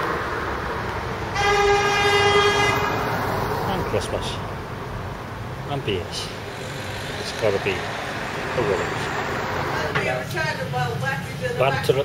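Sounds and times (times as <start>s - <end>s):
street traffic noise: 0.0s - 12.0s
vehicle horn toot: 1.4s - 3.1s.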